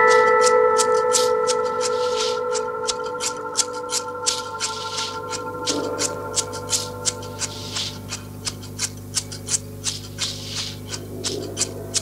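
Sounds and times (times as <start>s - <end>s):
low steady hum: 0.0s - 12.0s
puzzle pieces clicking and rustling: 0.0s - 12.0s.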